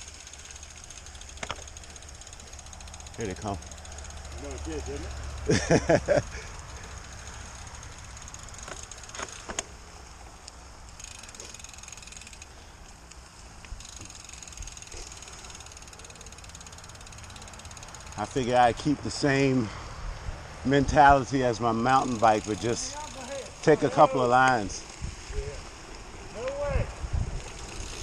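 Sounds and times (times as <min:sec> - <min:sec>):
bike tyres rolling on dirt trail: 0:00.0 - 0:28.0.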